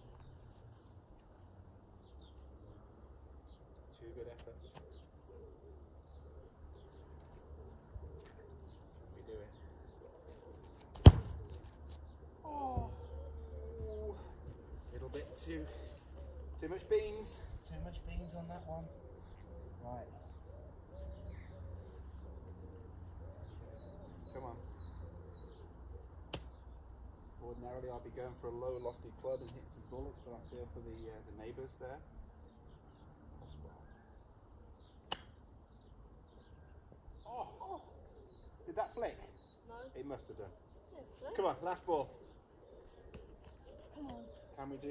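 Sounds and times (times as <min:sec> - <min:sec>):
faint birdsong: 0:00.0 - 0:44.9
football kick thud: 0:10.9 - 0:11.6.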